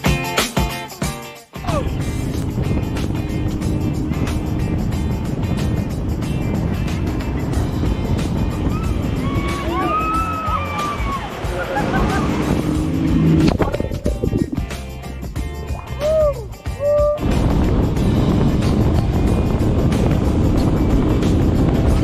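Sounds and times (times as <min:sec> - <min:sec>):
music: 0:00.0 - 0:22.0
jet boat engine rushing: 0:01.8 - 0:15.1, 0:17.2 - 0:22.0.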